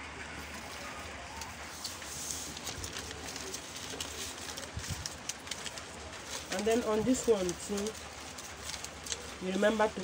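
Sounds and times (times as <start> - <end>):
paper rustling and crinkling: 0.3 - 10.0.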